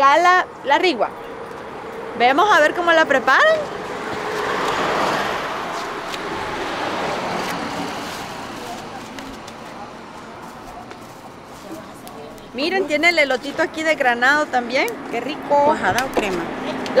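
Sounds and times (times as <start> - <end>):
vehicle passing on highway: 0.3 - 17.0.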